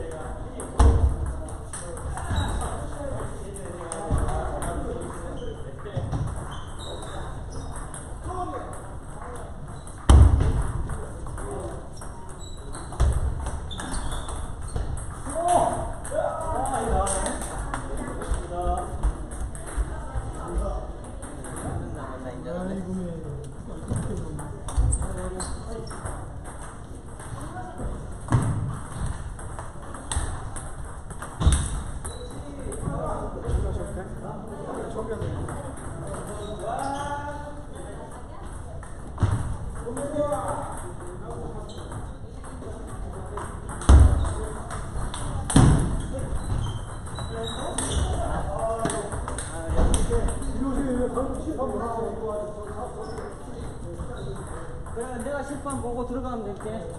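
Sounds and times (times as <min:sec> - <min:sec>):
table tennis balls clicking: 0:00.1 - 0:21.9, 0:22.7 - 0:33.3, 0:34.8 - 0:56.9.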